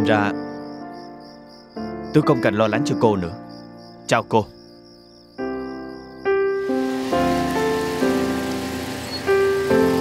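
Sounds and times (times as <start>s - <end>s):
slow piano music: 0.0s - 10.0s
steady hiss: 6.6s - 10.0s.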